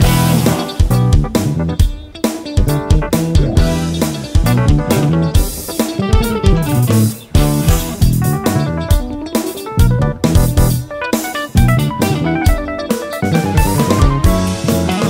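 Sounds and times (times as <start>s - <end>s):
jazz funk fusion band: 0.0s - 15.0s
electric guitar quick runs: 2.4s - 15.0s.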